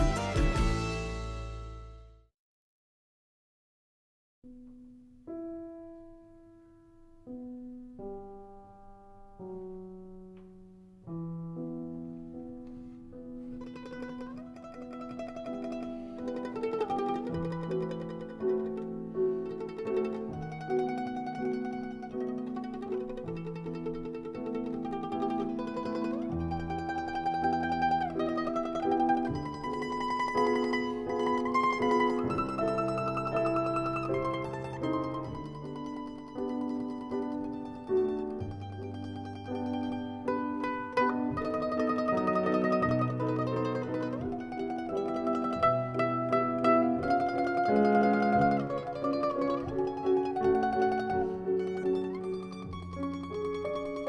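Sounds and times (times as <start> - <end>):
mandolin and piano duet: 0.0 - 2.0, 4.5 - 54.0.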